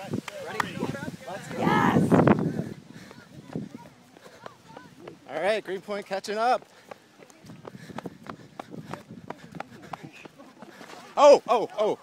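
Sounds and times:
faint voices: 0.0 - 12.0
running footsteps: 0.0 - 12.0.

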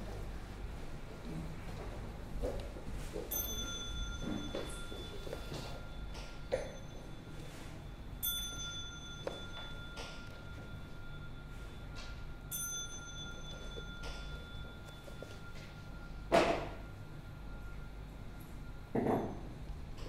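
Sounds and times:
small bell ringing: 3.2 - 20.0.

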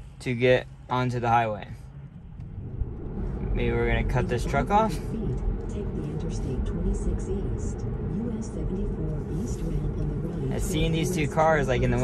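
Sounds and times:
road and tyre rumble in car: 0.0 - 12.0.

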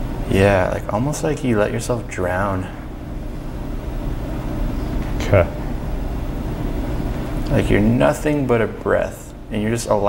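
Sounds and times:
low room rumble: 0.0 - 10.0.

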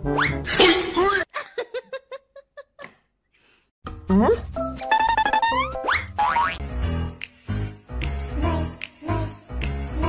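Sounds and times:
upbeat background music: 3.9 - 10.0.

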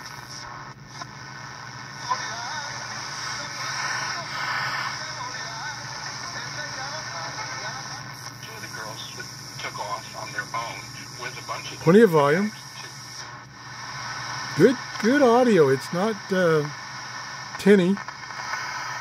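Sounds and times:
radio hiss and hum: 0.0 - 19.0
radio music: 0.0 - 19.0
radio voice: 2.0 - 13.3, 14.5 - 16.8, 17.5 - 18.0.

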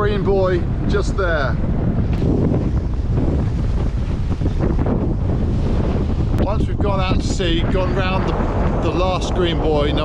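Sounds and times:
choppy sea: 0.0 - 10.0
wind buffeting microphone: 0.0 - 10.0.

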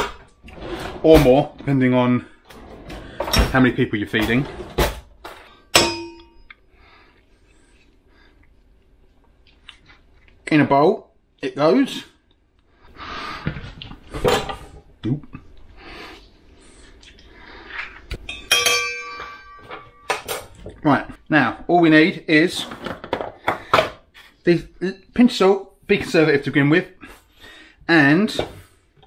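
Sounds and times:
metal utensil clanging on bowl: 18.3 - 20.5.

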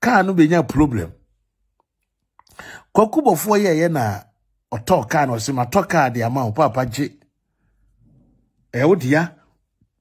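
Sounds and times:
person speaking: 0.0 - 1.4, 2.4 - 7.3, 8.7 - 9.6.

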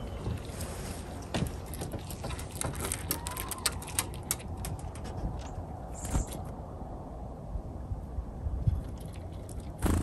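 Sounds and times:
steady low rumble: 4.8 - 10.0.

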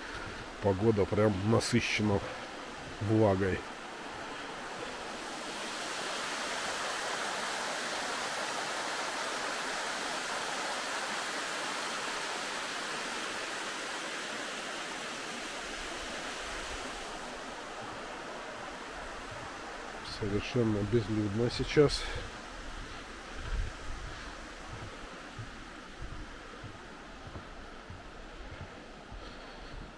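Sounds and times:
water rushing over a weir: 0.0 - 29.8.

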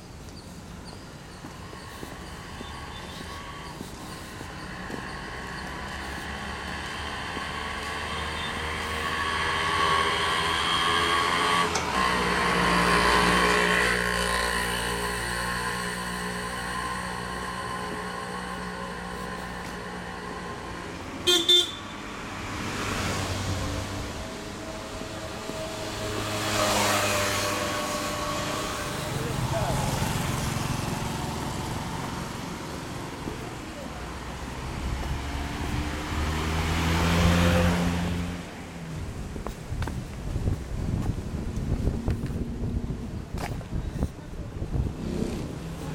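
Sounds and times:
vehicles passing: 0.0 - 45.9
car horn toot: 21.2 - 22.0.

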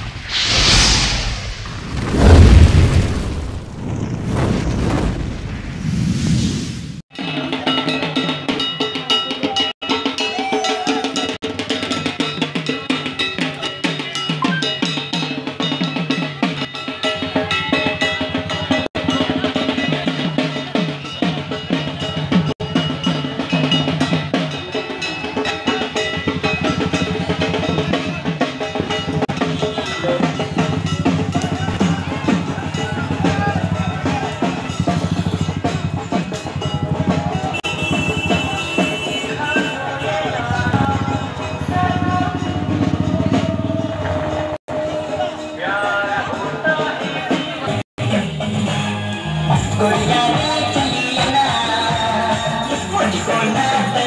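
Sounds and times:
loud boom: 0.0 - 7.0
whooshing sound effects: 0.0 - 7.0
fast drumming: 7.2 - 44.6.

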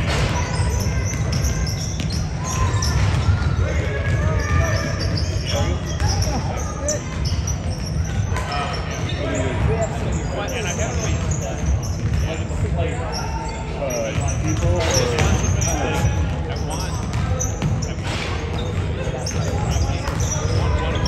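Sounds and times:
sneakers squeaking: 0.0 - 21.0.

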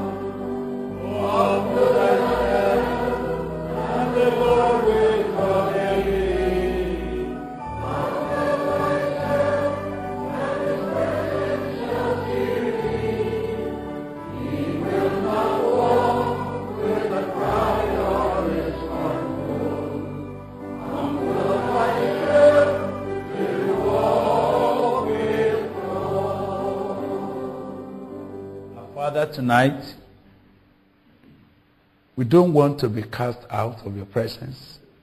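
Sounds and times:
choir singing sustained chords: 0.0 - 29.1.

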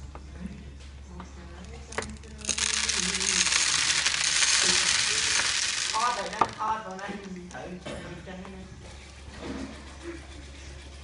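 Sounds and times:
food sizzling in hot oil: 2.5 - 6.8.

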